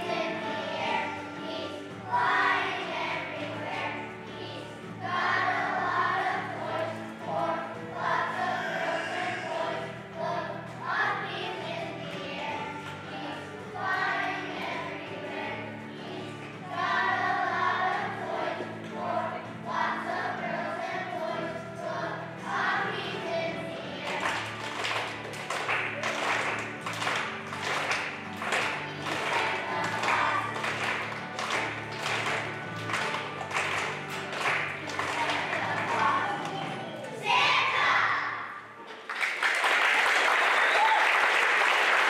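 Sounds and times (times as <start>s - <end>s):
children's choir singing: 0.0s - 38.8s
instrumental accompaniment: 21.9s - 37.4s
clapping in time: 24.1s - 36.8s, 38.9s - 42.0s.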